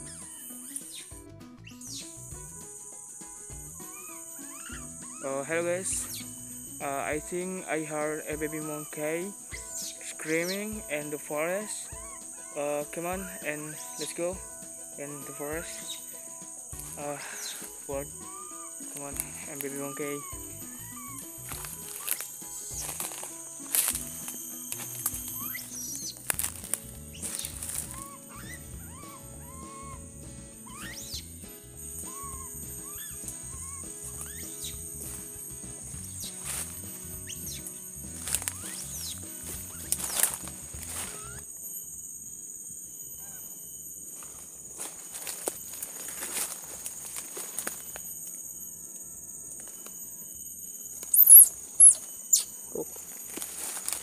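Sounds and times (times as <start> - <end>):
background music: 0.0 - 41.4
high-pitched insect drone: 0.0 - 54.0
footsteps crunching through dry leaves: 1.8 - 29.9, 31.8 - 41.4, 44.2 - 48.1, 51.0 - 54.0.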